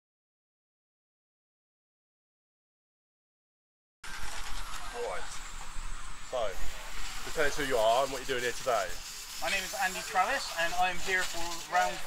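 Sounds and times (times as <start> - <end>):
steady hiss and low rumble: 4.1 - 12.0.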